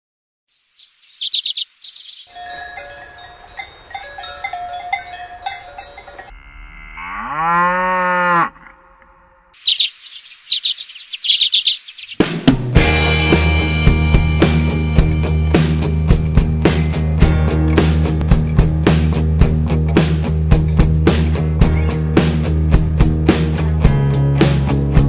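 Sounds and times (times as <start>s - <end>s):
birds chirping: 0.5s - 6.3s, 9.5s - 13.2s
clanking bell ringing: 2.3s - 6.3s
cow mooing: 2.3s - 9.6s.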